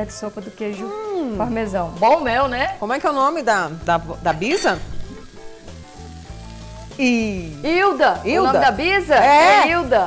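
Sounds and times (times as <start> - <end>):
patty sizzling in pan: 0.0 - 10.0
soft background music: 0.0 - 10.0.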